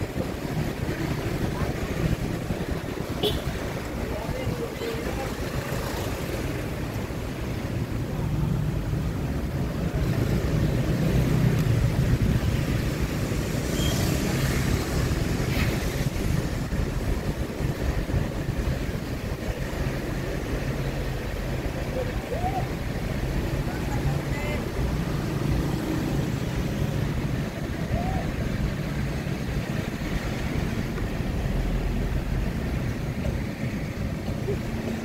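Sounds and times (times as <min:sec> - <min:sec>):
car driving slowly: 0:00.0 - 0:35.0
motorbikes passing: 0:00.0 - 0:35.0.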